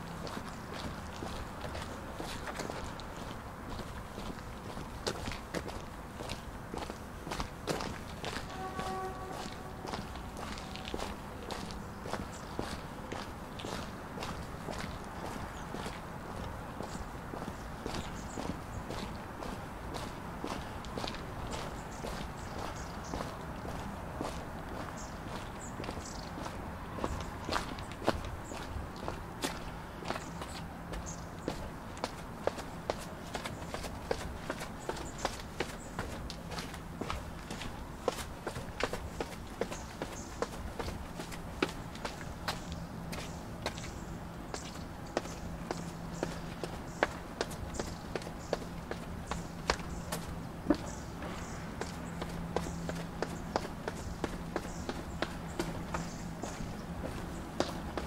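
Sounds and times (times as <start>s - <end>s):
footsteps on stone path: 0.0s - 58.0s
steady background hum: 0.0s - 58.0s.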